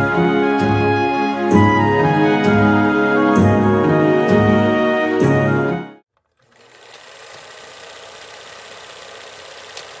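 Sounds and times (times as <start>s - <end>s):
film projector clatter: 6.2s - 10.0s.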